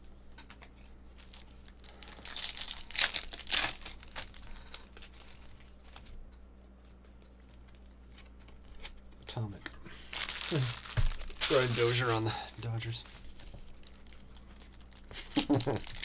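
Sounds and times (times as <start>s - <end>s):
foil wrapper ripping: 1.2s - 6.1s, 10.0s - 16.0s
cards rustling and clicking: 10.1s - 16.0s.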